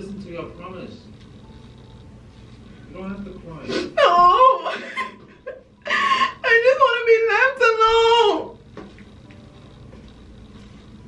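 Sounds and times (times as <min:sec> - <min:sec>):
woman fake crying: 0:03.9 - 0:05.2, 0:05.8 - 0:06.7.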